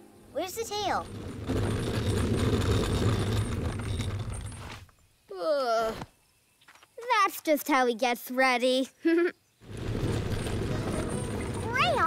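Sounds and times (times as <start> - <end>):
low rough rumbling with crackle: 0.7 - 5.0, 9.6 - 12.0.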